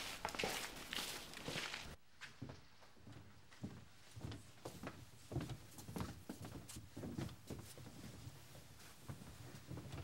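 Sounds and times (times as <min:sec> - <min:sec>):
footsteps on gritty dirt: 0:00.0 - 0:02.0.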